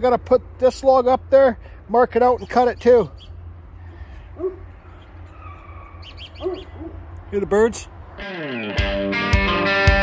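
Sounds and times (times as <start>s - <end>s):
birds calling faintly: 1.6s - 7.4s.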